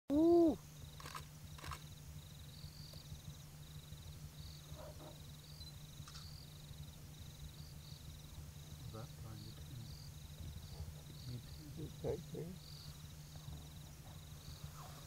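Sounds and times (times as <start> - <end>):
steady low hum: 0.1 - 15.0.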